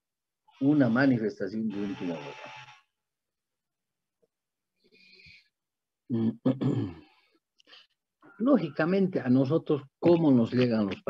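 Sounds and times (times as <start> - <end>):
man lecturing: 0.6 - 2.5, 8.4 - 11.0.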